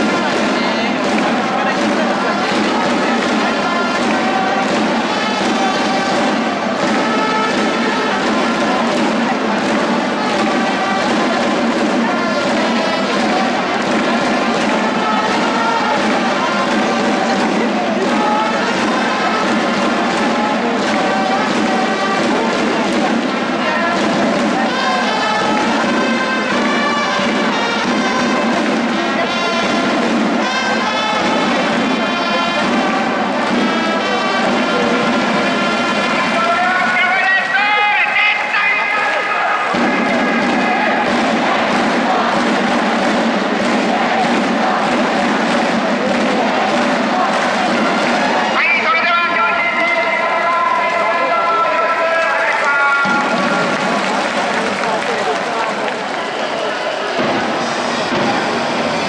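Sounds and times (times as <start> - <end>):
crowd noise: 0.0 - 59.0
upbeat music over loudspeakers: 0.0 - 59.0.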